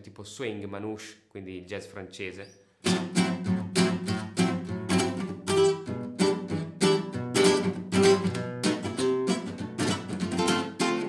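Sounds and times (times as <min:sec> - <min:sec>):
nylon-string guitar strummed: 0:02.8 - 0:11.0.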